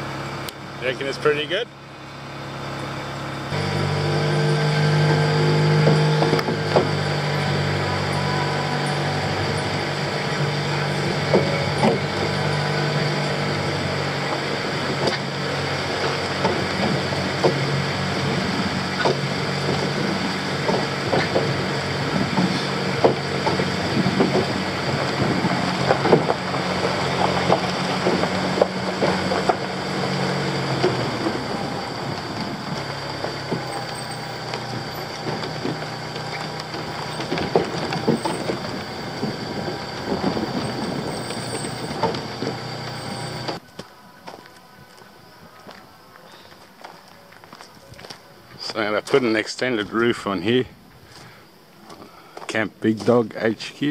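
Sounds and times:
car engine running: 0.0 - 43.7
knocks and rattles: 18.9 - 43.6.

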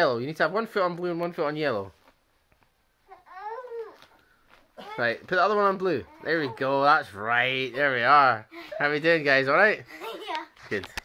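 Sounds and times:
girl whining: 3.1 - 4.2.

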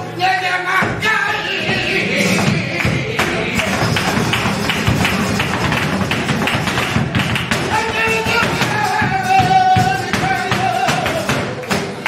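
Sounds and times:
flamenco guitar playing: 0.9 - 12.0
rhythmic hand-clapping: 2.2 - 12.0
dancer's heel and toe strikes: 2.4 - 12.0.

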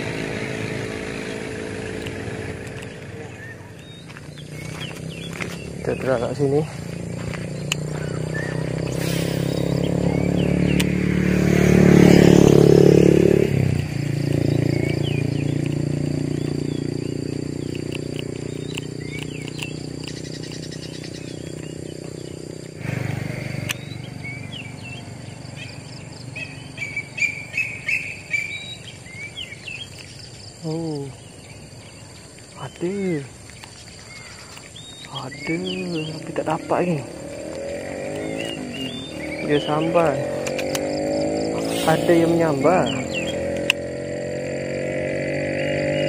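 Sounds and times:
small birds chirping: 0.0 - 46.0
vehicle engine hum passing: 0.0 - 46.0.

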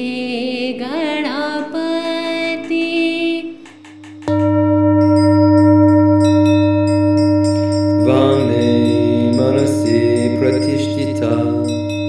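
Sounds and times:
deep struck bell tone: 3.8 - 12.0
higher chime notes: 3.8 - 12.0
chanted vocal: 7.5 - 12.0.

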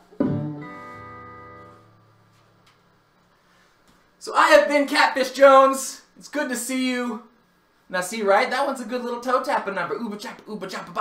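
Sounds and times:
guitar strings ringing: 0.0 - 2.0
acoustic guitar knocked: 0.2 - 0.6.

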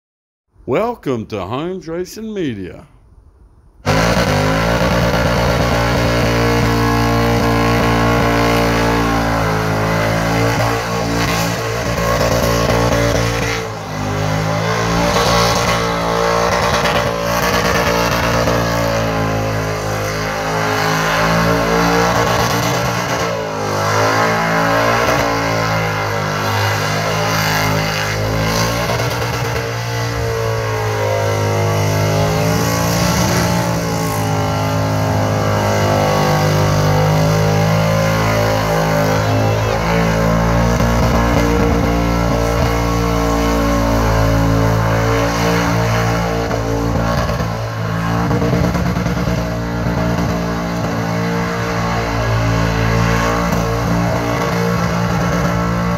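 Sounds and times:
spinning tyres: 3.8 - 52.3
car engine at high revs: 3.8 - 55.9.

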